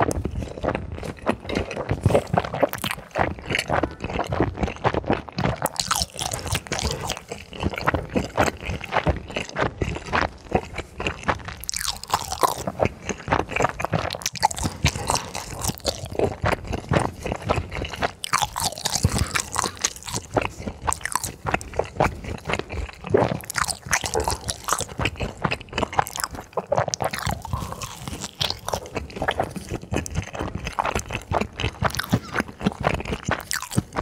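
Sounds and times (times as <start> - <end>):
crunchy food being chewed: 0.0 - 34.0.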